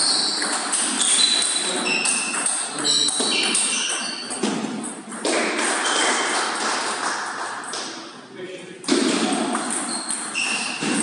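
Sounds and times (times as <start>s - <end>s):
table tennis ball pings: 0.0s - 6.3s, 8.9s - 11.0s.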